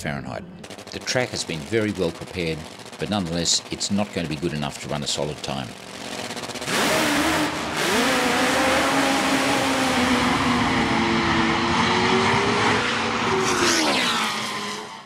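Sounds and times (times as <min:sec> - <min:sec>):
drag motorcycle engine roaring: 0:00.0 - 0:15.0.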